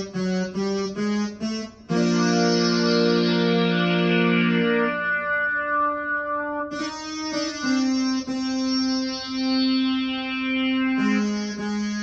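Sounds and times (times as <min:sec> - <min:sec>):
keyboard playing sustained notes: 0:00.0 - 0:12.0.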